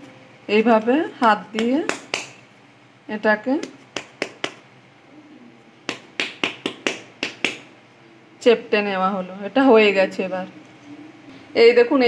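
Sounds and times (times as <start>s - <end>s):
hands patting dough: 0.6s - 2.5s, 3.4s - 4.7s, 5.8s - 7.8s.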